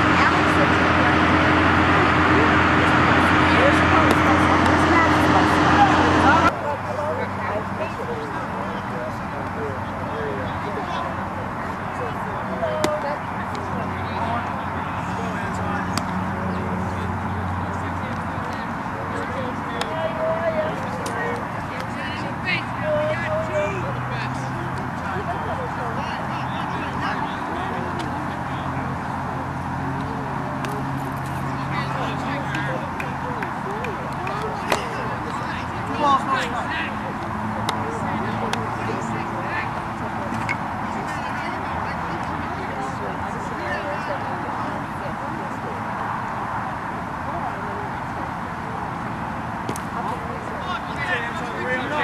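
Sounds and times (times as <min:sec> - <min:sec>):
distant voices: 0:00.0 - 0:52.0.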